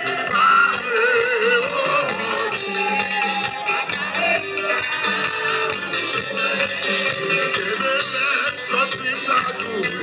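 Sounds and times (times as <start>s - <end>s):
man singing: 0.0s - 3.5s, 5.9s - 10.0s
live gospel band music: 0.0s - 10.0s.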